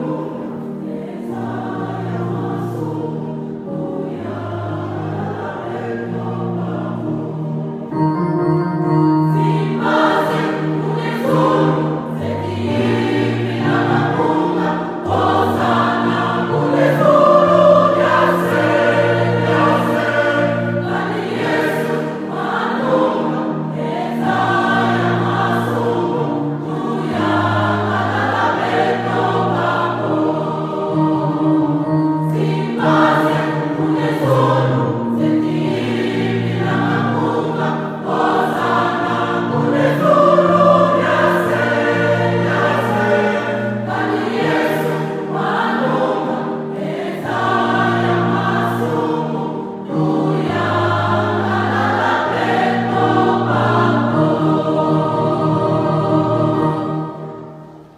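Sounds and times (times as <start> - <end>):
choir singing gospel: 0.0 - 57.9.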